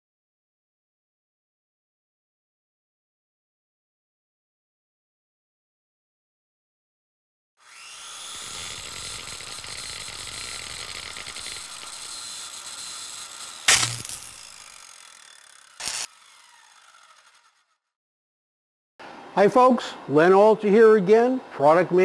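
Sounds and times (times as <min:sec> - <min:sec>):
sparking hiss with crackle: 0:13.7 - 0:14.2.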